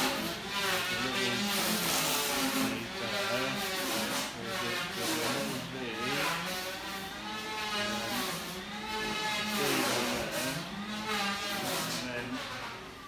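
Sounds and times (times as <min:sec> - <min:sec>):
motor running: 0:00.0 - 0:13.0.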